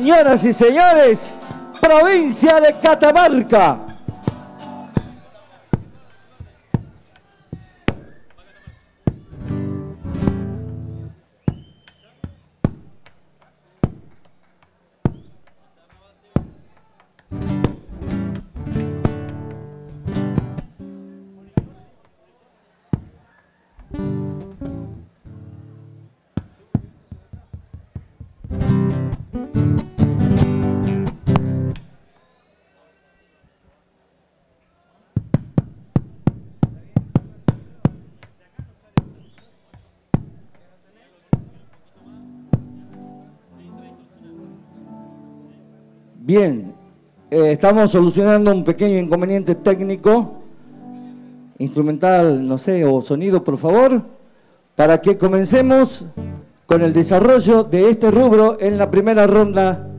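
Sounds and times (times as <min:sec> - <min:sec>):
acoustic guitar strumming: 0:00.0 - 0:06.1, 0:09.2 - 0:11.2, 0:17.3 - 0:21.4, 0:23.9 - 0:26.1, 0:28.4 - 0:32.0, 0:42.0 - 0:51.6, 0:55.0 - 0:59.9
sharp percussive knocks: 0:35.2 - 0:39.4, 0:42.6 - 0:43.0.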